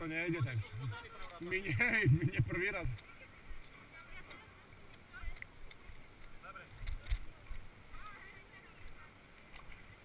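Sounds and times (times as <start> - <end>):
faint distant voices: 0.0 - 10.0.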